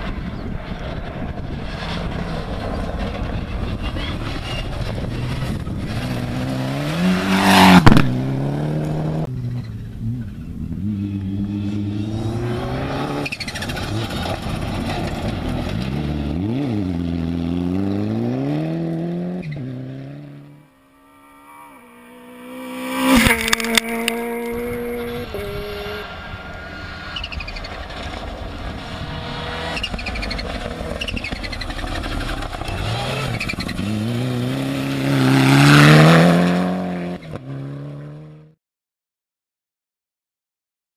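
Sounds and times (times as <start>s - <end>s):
rally car engines revving: 1.0s - 38.5s.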